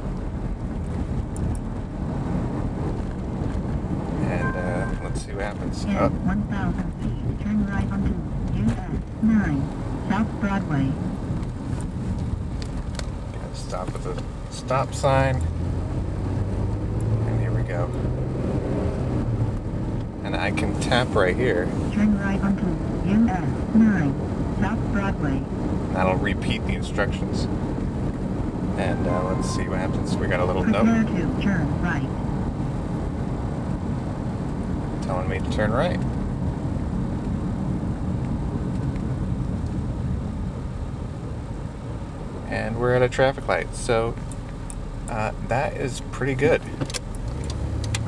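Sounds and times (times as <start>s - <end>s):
car engine hum: 0.0s - 48.0s
road noise: 0.0s - 48.0s.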